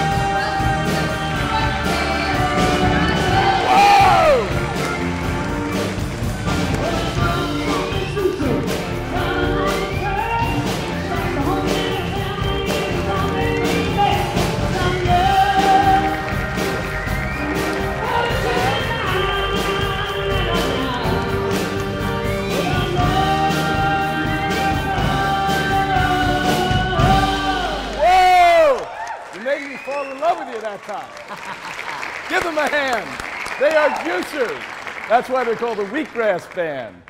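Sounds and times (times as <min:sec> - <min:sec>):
band music with keyboard and drums: 0:00.0 - 0:28.7
loud falling whoop: 0:03.6 - 0:04.5.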